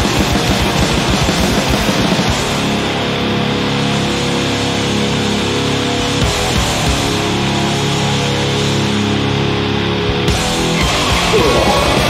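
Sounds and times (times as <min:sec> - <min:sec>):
distorted electric guitars: 0:00.0 - 0:12.0.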